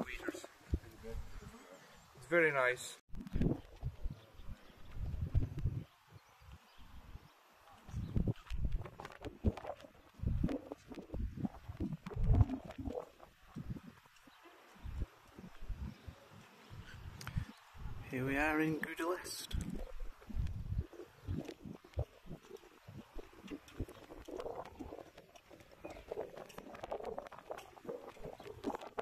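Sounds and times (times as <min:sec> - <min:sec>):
wind buffeting microphone: 0:03.1 - 0:18.1, 0:19.5 - 0:29.0.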